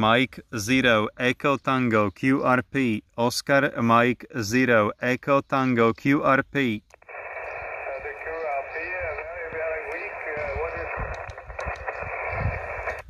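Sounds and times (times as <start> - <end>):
radio band hiss: 6.1 - 13.0
radio voice through speaker: 7.0 - 13.0.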